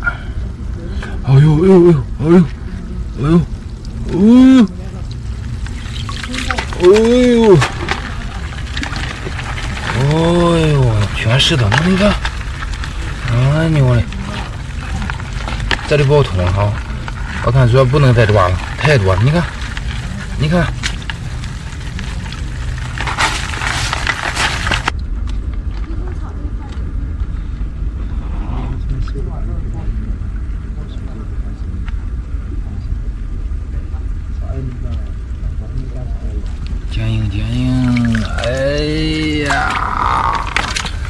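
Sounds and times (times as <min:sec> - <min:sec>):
low steady rumble: 0:00.0 - 0:41.0
crabs crawling in plastic bucket: 0:00.4 - 0:27.1, 0:34.3 - 0:41.0
water splashing and trickling: 0:02.6 - 0:25.0, 0:36.4 - 0:41.0.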